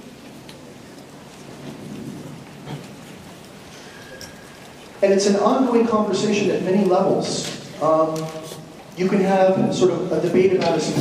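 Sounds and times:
low rumbling room noise: 0.0 - 11.0.

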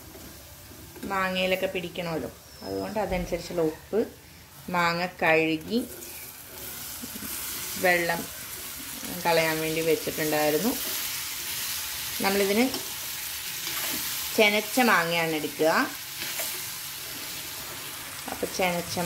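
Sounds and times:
fruit sizzling in hot oil: 0.0 - 19.0.

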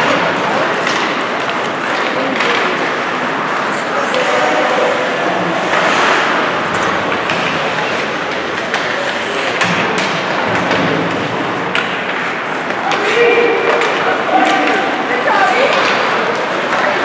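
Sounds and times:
spectators' voices: 0.0 - 17.0
skates and sticks scraping ice: 0.2 - 17.0.

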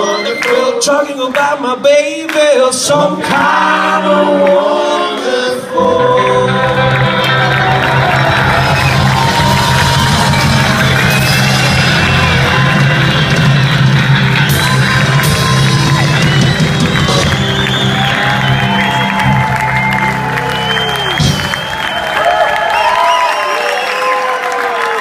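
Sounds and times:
live rock band playing: 5.8 - 21.8
crowd cheering and whooping: 6.2 - 25.0.

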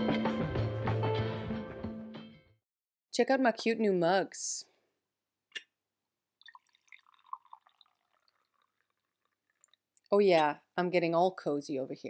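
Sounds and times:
tea pouring into a mug: 6.4 - 10.0.

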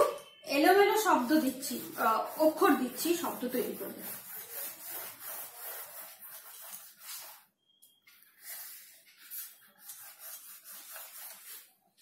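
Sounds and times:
eraser rubbing on whiteboard: 0.8 - 7.5, 8.2 - 11.8.

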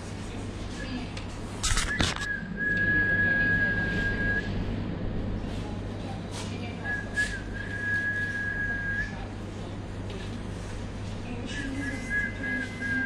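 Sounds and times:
low steady hum: 0.0 - 13.0
high whistling tone: 1.9 - 4.5.

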